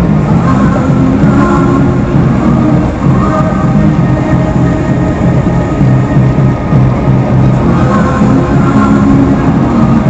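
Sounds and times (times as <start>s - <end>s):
music from radio: 0.0s - 10.0s
truck engine and tyre noise: 0.0s - 10.0s.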